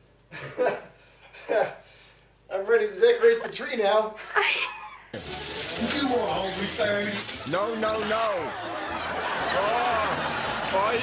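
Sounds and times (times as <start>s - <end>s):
room noise: 5.1s - 11.0s
indistinct voices talking: 5.2s - 11.0s.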